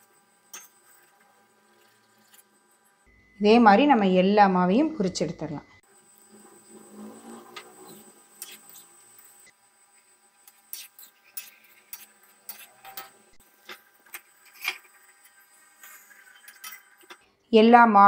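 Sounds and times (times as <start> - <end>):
dough frying in hot oil: 0.0 - 3.1, 5.8 - 17.4.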